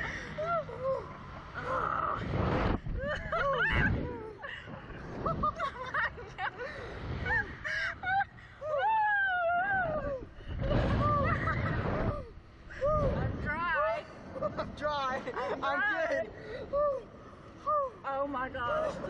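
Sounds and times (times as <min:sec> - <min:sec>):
people laughing and crying out: 0:00.0 - 0:13.0
wind rushing over microphone: 0:01.6 - 0:08.3, 0:09.4 - 0:15.3.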